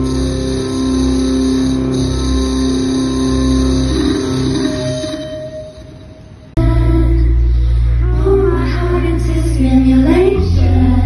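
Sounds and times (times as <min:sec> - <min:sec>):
live music with deep bass: 0:06.6 - 0:11.0.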